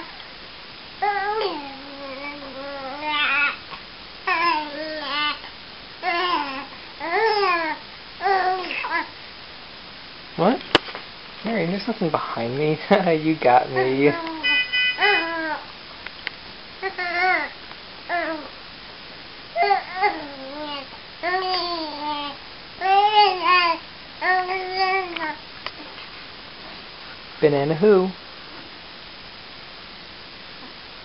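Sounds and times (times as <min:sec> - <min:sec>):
baby cooing: 0:01.0 - 0:09.1, 0:13.8 - 0:15.7, 0:16.8 - 0:18.6, 0:19.6 - 0:25.4.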